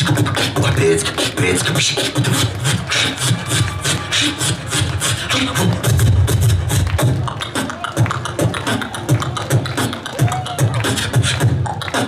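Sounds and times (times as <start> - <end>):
beatboxing mouth clicks and hits: 0.0 - 12.0.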